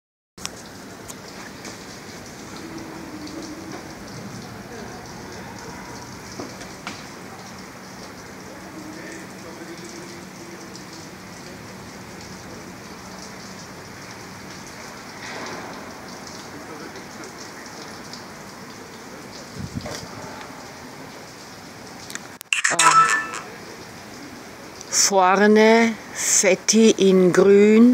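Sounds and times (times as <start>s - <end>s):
steady outdoor hiss: 0.4s - 27.6s.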